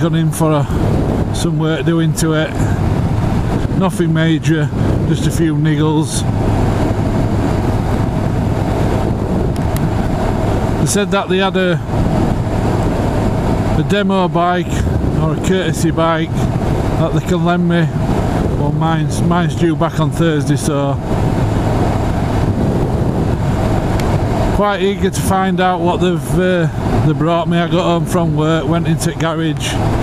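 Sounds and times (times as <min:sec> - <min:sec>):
motorcycle engine cruising: 0:00.0 - 0:30.0
wind rushing over microphone: 0:00.0 - 0:30.0
motorcycle engine running: 0:04.7 - 0:15.4.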